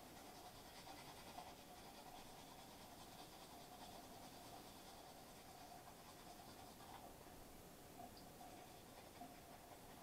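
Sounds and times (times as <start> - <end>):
toothbrush brushing teeth: 0.0 - 7.2, 8.4 - 10.0.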